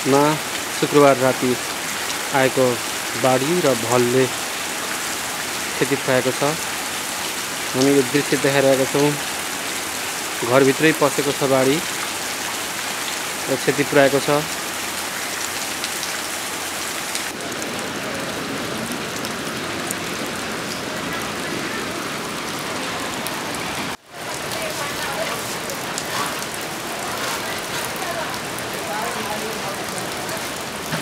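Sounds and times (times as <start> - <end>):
rain pattering on roofs: 0.0 - 31.0.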